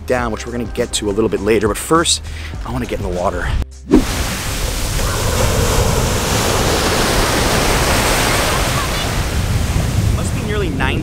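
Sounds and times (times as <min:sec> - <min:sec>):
ocean surf breaking on sand: 0:04.0 - 0:10.7.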